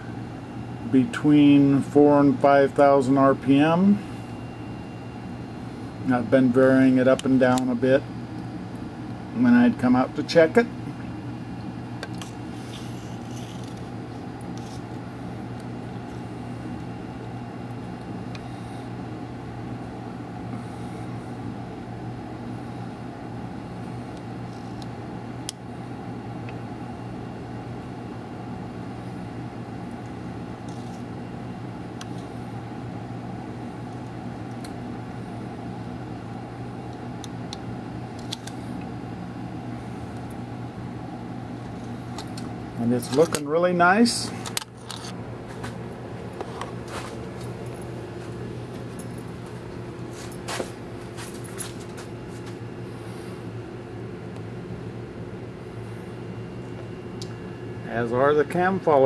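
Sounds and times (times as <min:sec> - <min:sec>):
low machine hum: 0:00.0 - 0:59.0.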